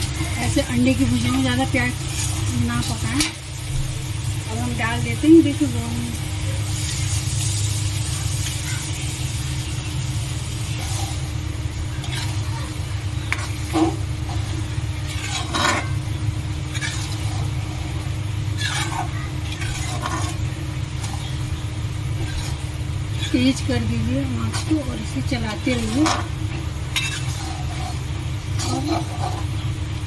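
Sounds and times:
eggs sizzling in hot oil: 0.0s - 30.0s
low hum: 0.0s - 30.0s
metal spatula scraping pan: 12.0s - 12.6s, 13.2s - 21.4s, 22.2s - 29.6s.

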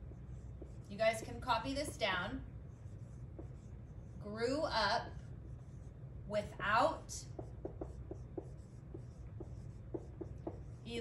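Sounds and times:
marker squeaking on whiteboard: 2.8s - 4.2s, 7.3s - 11.0s.

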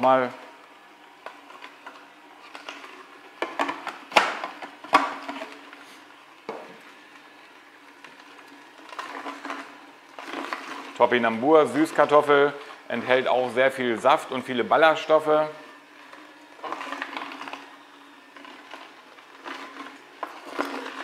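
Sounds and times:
juicer motor humming: 0.0s - 21.0s.

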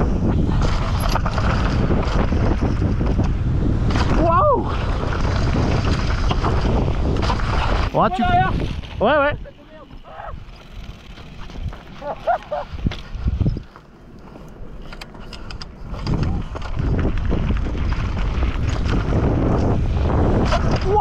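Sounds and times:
bike clicks and rattles: 0.0s - 9.3s, 9.9s - 21.0s
wind on microphone: 0.0s - 13.8s, 15.2s - 21.0s
bike tyres rolling on gravel: 0.0s - 21.0s.

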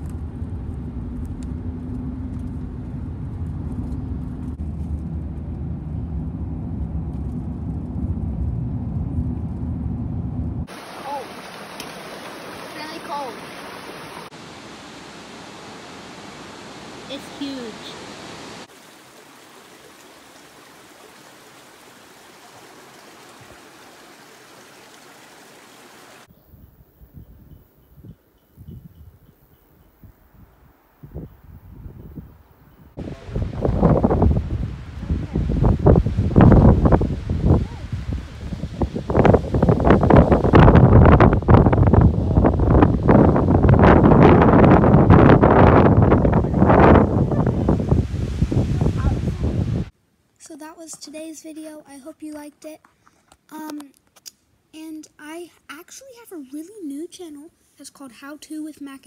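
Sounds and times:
wind gusting on microphone: 0.0s - 14.3s, 26.4s - 49.9s
creek babbling over rocks: 10.7s - 26.3s
waterfall rushing: 10.7s - 26.3s.

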